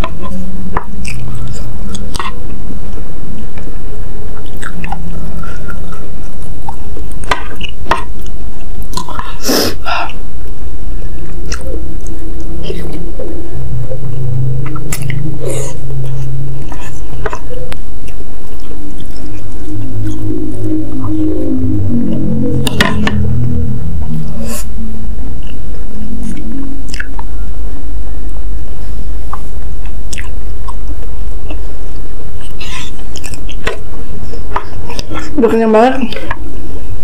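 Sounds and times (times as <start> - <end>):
low steady hum: 0.0 - 37.0
person chewing noodles: 4.4 - 10.2, 29.8 - 30.8, 32.4 - 35.3.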